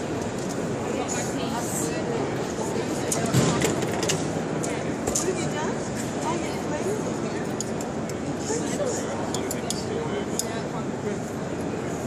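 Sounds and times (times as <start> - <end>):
crowd babble in a hall: 0.0 - 12.0.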